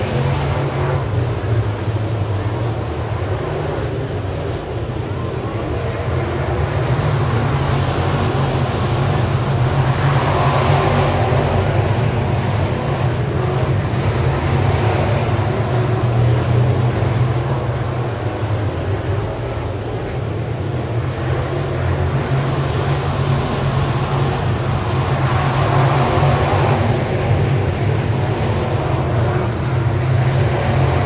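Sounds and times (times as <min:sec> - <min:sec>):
race car engines roaring: 0:00.0 - 0:31.0.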